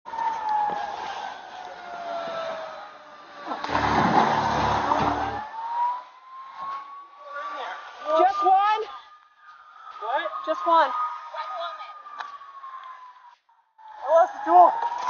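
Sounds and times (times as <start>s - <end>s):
police siren wailing: 0.1s - 15.0s
loud rumbling noise: 3.7s - 5.5s.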